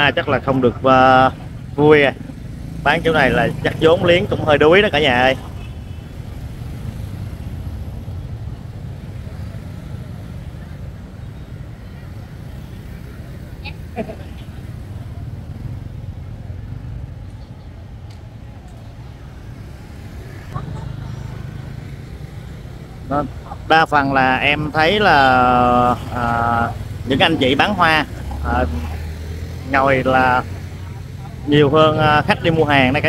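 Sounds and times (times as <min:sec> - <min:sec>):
street traffic rumble: 0:00.0 - 0:33.0
person laughing: 0:13.7 - 0:14.6, 0:20.6 - 0:21.4.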